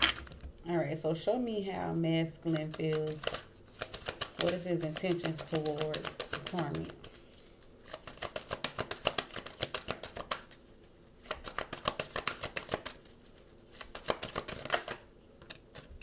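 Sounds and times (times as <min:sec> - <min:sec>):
cards being shuffled: 0:02.4 - 0:16.0.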